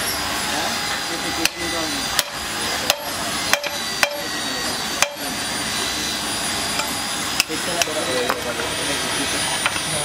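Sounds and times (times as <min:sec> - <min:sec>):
hammer striking steel: 0:01.4 - 0:04.4, 0:05.0 - 0:05.4.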